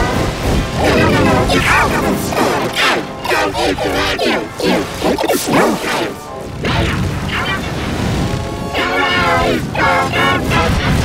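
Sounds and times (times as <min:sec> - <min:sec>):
warbling pitch-shifted music: 0:00.0 - 0:11.0.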